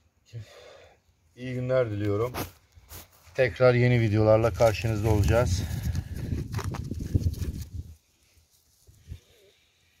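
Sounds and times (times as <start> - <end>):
hand patting soil: 4.4 - 8.8.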